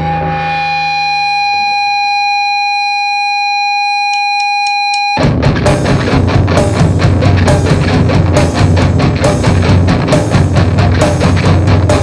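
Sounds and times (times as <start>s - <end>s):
guitar feedback tone: 0.0s - 12.0s.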